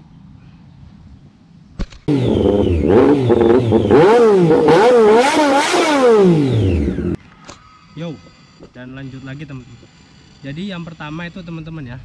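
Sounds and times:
motorcycle engines revving: 2.1s - 7.2s.

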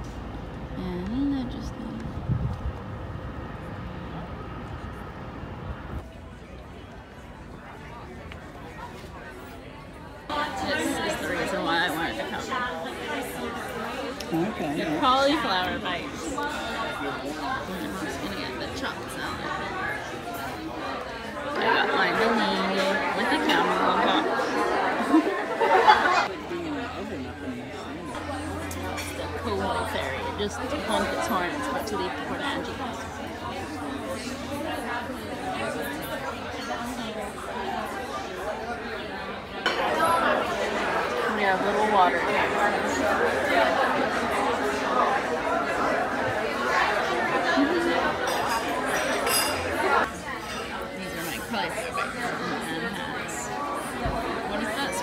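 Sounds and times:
steady low hum: 0.0s - 6.0s
diners chattering: 0.0s - 55.0s.

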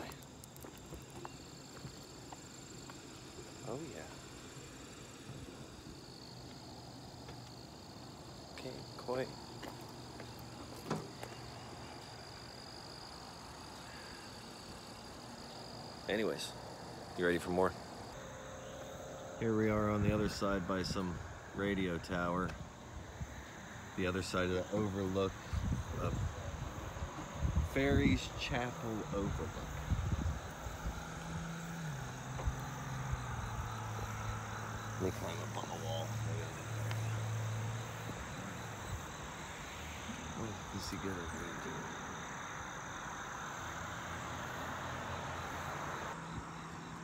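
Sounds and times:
vehicle engine humming: 0.0s - 27.6s, 28.6s - 47.0s
insects chorus: 0.0s - 47.0s.

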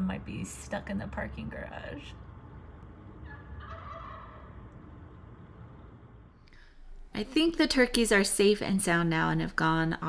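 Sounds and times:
low background rumble: 0.0s - 10.0s
wild turkey calling: 3.2s - 4.7s.

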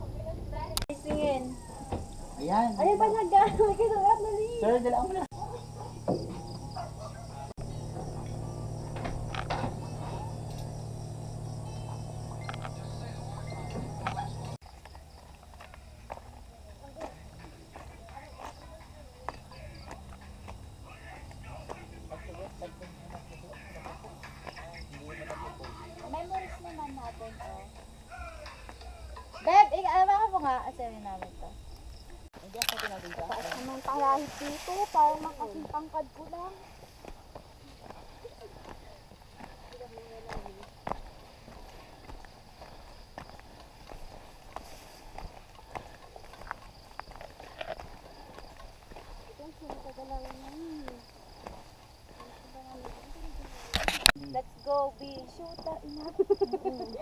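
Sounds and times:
people talking and calling out: 0.0s - 14.6s, 15.6s - 57.0s.

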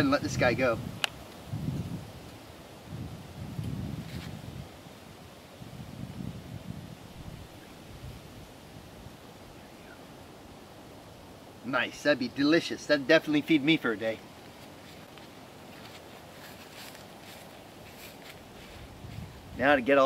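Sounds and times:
wind rumble on microphone: 0.0s - 10.1s, 16.3s - 20.0s.

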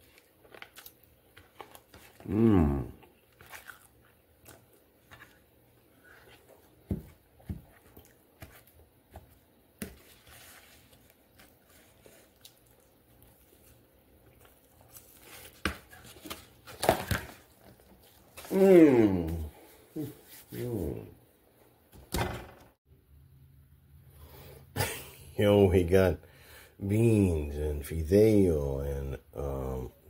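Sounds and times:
food rustling and crinkling: 0.0s - 18.6s.

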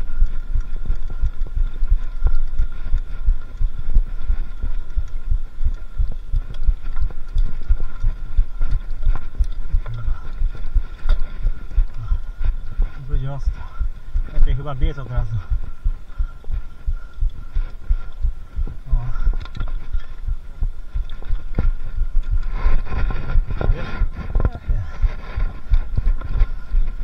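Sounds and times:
faint steady whine: 0.0s - 27.0s.

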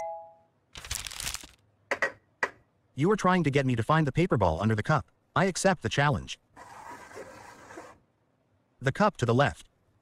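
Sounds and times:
plastic cups and paper rustling: 0.8s - 1.6s.

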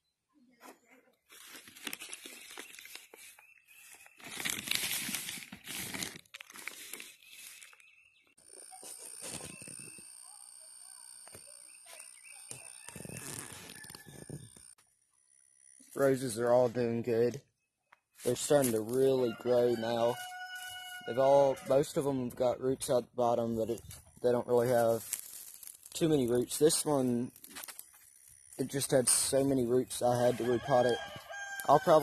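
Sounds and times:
soil and plastic bag rustling: 1.3s - 7.9s, 23.8s - 27.9s
faint steady high tone: 8.5s - 12.8s.

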